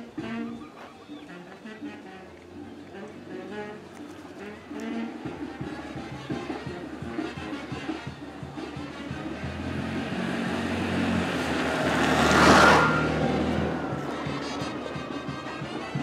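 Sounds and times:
small motorcycle engine passing: 0:08.0 - 0:16.0.

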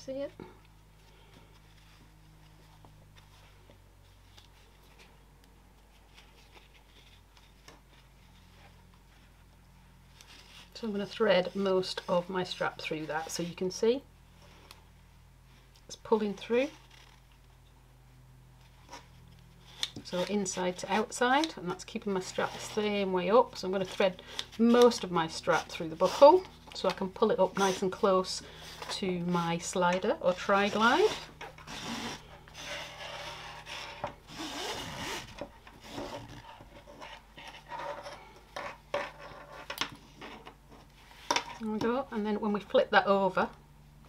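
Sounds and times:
steady low hum: 0:00.0 - 0:44.0
strap sliding through buckle: 0:16.8 - 0:17.2, 0:30.7 - 0:38.0.

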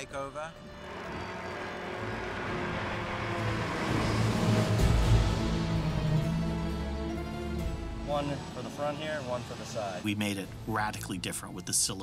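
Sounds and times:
boat hoist machinery rumble: 0:00.6 - 0:05.0.

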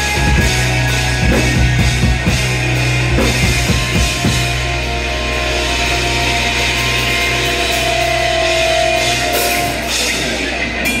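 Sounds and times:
electric guitars and bass drone: 0:00.0 - 0:11.0.

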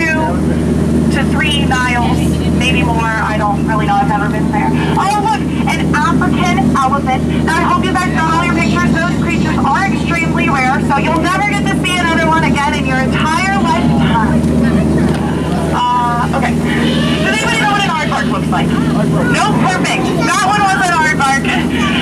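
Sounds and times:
boat motor humming: 0:00.0 - 0:22.0
voices talking: 0:00.0 - 0:22.0.

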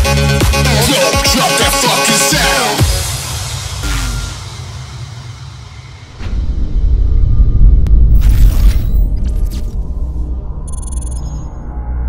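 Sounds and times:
music: 0:00.0 - 0:08.3, 0:08.9 - 0:12.0
deep cinematic boom: 0:03.1 - 0:12.0
sustained low rumble: 0:05.3 - 0:12.0.

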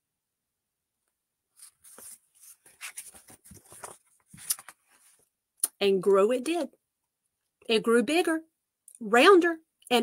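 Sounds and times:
paper page rustling: 0:01.5 - 0:05.3.

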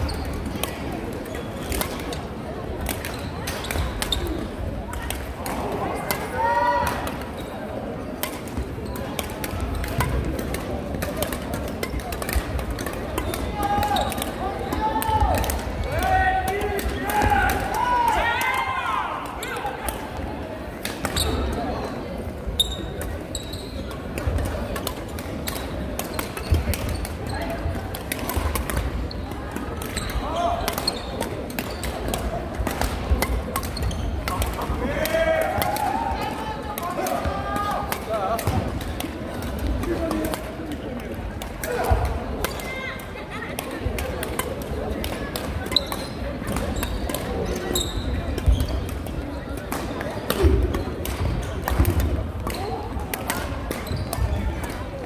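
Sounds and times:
rackets striking shuttlecock: 0:00.1 - 0:07.4, 0:08.1 - 0:18.6, 0:22.8 - 0:55.0.

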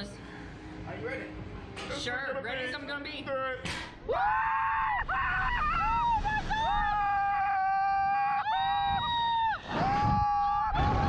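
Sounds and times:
people screaming: 0:04.1 - 0:11.0.

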